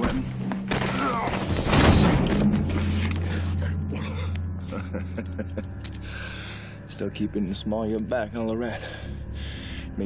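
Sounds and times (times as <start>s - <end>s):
dramatic score music: 0.0s - 10.0s.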